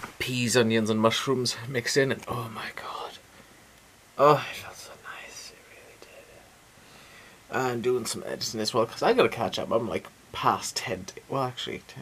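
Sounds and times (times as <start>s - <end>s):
man whispering: 0.3s - 3.3s, 4.2s - 6.6s.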